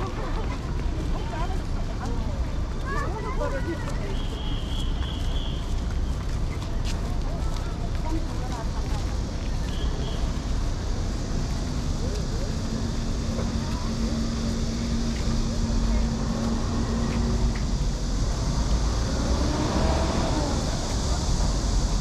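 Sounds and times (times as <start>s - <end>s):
passers-by talking: 0.0s - 22.0s
road traffic rumble: 0.0s - 22.0s.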